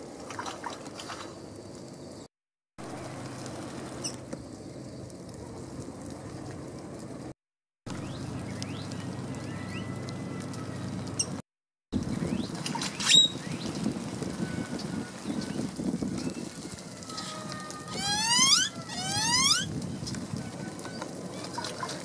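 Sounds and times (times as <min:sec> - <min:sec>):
wild birds calling: 0:08.0 - 0:11.4, 0:16.4 - 0:19.8.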